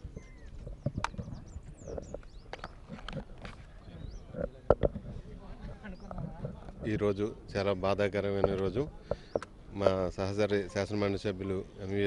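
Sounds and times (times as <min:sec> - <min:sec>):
faint bird chirps: 0:00.0 - 0:03.0
microphones clicking and knocking: 0:00.0 - 0:09.6.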